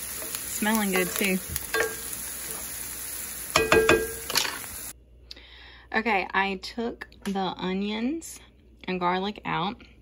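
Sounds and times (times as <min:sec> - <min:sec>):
onions sizzling in a skillet: 0:00.0 - 0:05.0.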